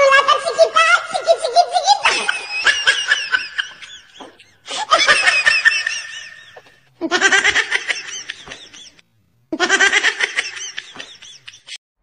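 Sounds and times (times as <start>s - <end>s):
laughter in bursts: 1.4s - 11.8s.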